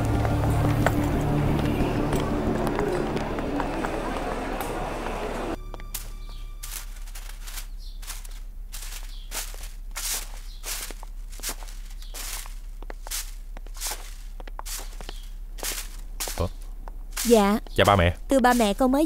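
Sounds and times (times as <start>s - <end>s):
broom sweeping leaves on grass: 6.0s - 16.5s.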